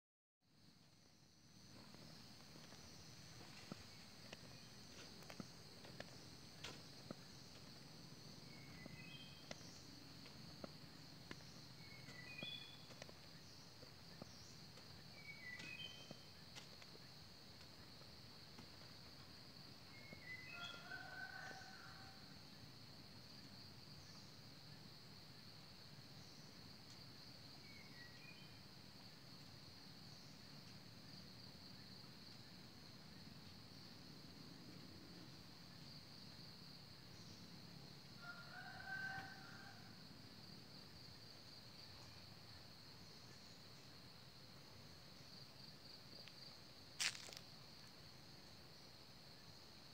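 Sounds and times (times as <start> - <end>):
high insect drone: 0.5 - 49.9.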